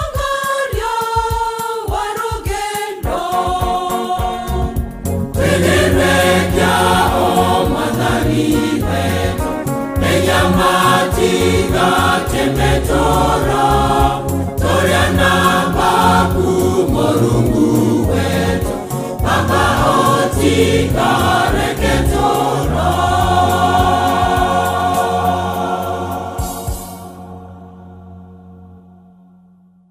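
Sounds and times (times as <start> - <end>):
choir singing in harmony: 0.0 - 29.5
sustained low bass notes: 4.5 - 29.1.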